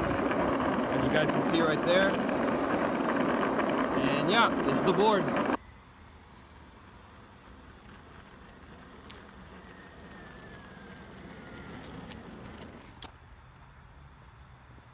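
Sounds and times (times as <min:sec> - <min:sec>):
wheels rolling on asphalt: 0:00.0 - 0:05.6, 0:06.3 - 0:14.9
falling whine: 0:00.0 - 0:13.0.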